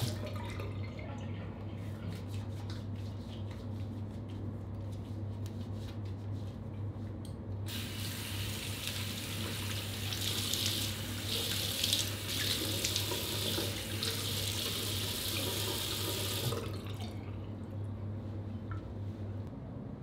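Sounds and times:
steady low hum: 16.5 - 20.0.

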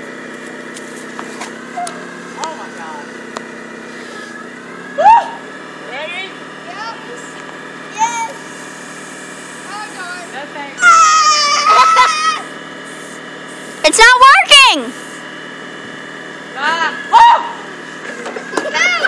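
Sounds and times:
forklift engine idling: 0.0 - 14.0, 14.6 - 19.0
short rising vocal cries: 4.0 - 5.5, 10.8 - 12.6, 16.9 - 17.7.

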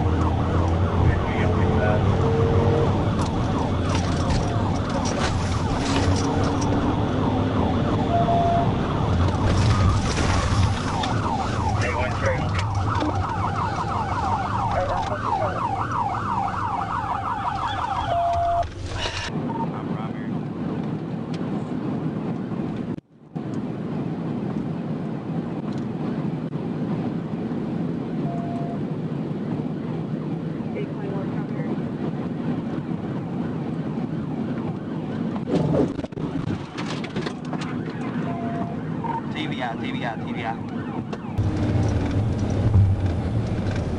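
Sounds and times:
police siren wailing: 0.0 - 18.8, 37.4 - 42.5
car engine and road noise: 0.0 - 43.9.

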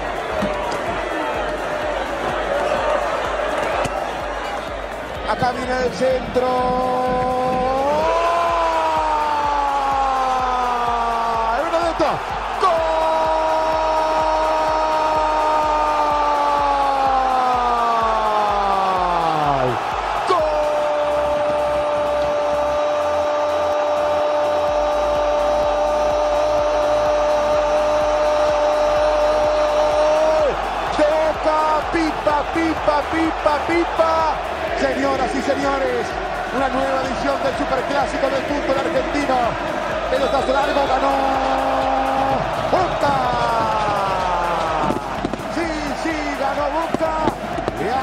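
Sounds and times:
stadium crowd cheering: 0.0 - 48.0.

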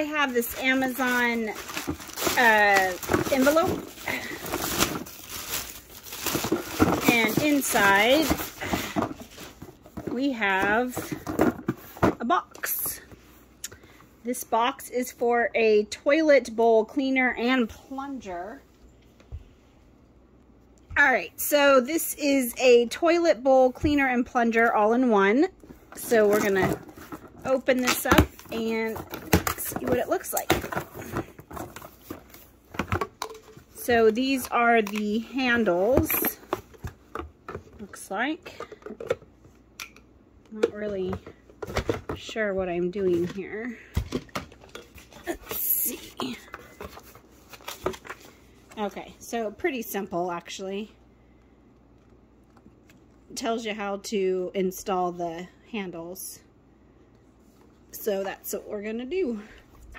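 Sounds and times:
plastic mailer crinkling: 0.0 - 9.8
plastic pieces rustling and knocking: 0.0 - 12.2, 26.0 - 37.9.

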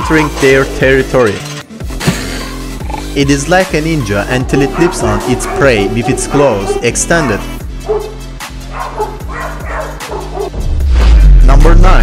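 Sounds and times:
small dog barking and yipping: 4.5 - 10.5.

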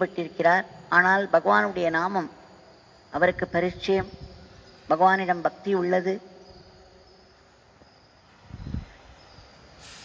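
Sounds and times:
faint background noise: 0.0 - 10.0
brief hiss: 9.7 - 10.0.

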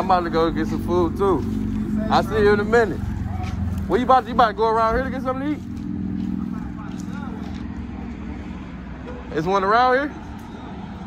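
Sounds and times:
low motor hum: 0.0 - 9.3.

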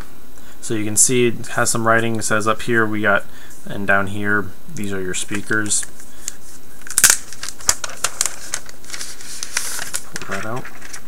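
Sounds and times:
cardboard packaging rustling: 5.2 - 11.0.

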